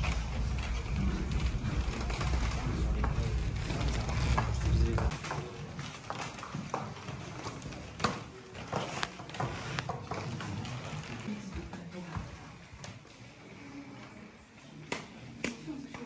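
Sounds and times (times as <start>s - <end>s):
low rumble: 0.0s - 5.1s
footsteps on wooden floor: 0.0s - 13.0s
faint voices: 0.0s - 16.0s.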